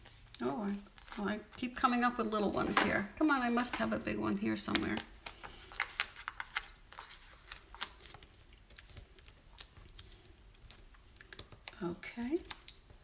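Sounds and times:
paper crinkling: 0:00.0 - 0:13.0.

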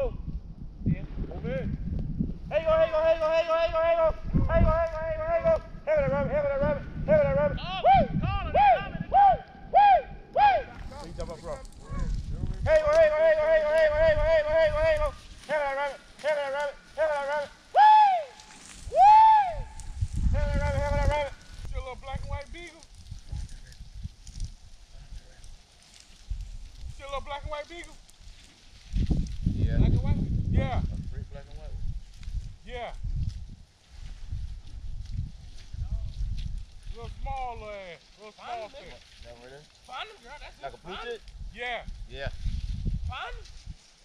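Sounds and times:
brush rustling underfoot: 0:10.7 - 0:44.0.

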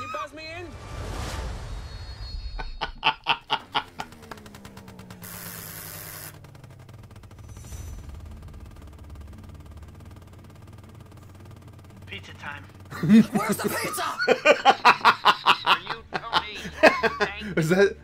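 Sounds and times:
slowly falling tone: 0:00.6 - 0:11.9
loud pulses: 0:00.7 - 0:12.1
low steady hum: 0:02.3 - 0:17.5.

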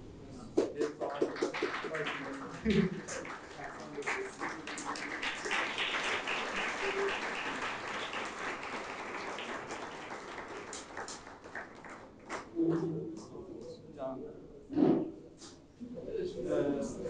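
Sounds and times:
audience applauding: 0:00.6 - 0:12.6.

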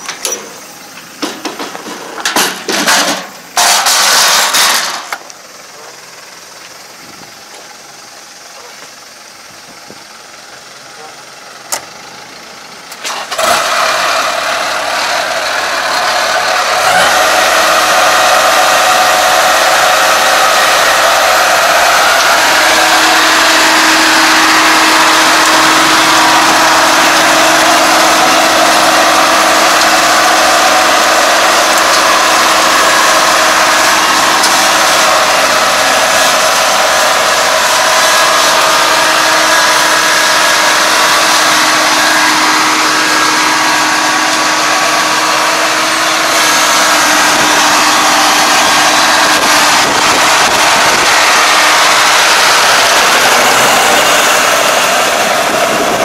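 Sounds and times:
diesel engine starting and running: 0:00.0 - 0:56.0.

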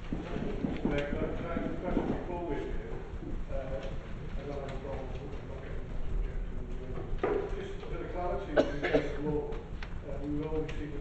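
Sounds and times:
people talking indistinctly: 0:00.2 - 0:11.0.

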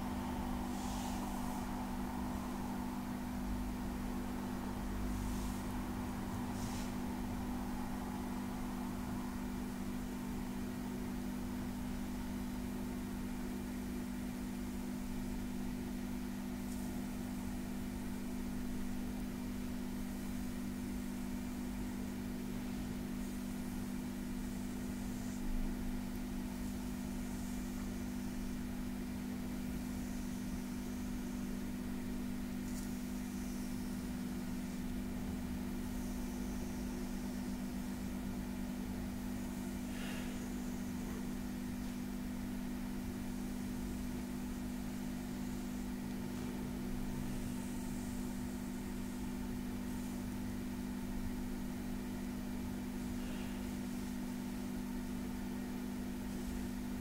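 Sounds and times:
low electrical hum: 0:00.0 - 0:57.0.

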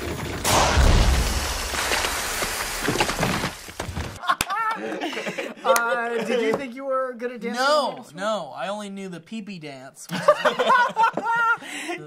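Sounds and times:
loud noisy crash with knocks: 0:00.4 - 0:04.2
men laughing: 0:04.2 - 0:06.4, 0:10.1 - 0:12.0.

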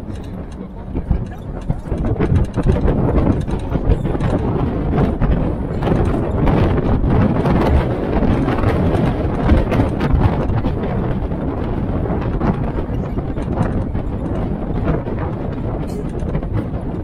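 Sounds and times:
jeep engine and road noise: 0:00.0 - 0:17.0
vehicle rattles and knocks: 0:00.0 - 0:17.0.

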